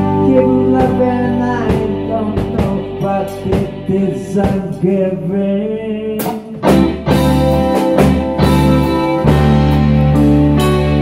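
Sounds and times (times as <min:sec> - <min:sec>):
rock band playing slow song: 0:00.0 - 0:11.0.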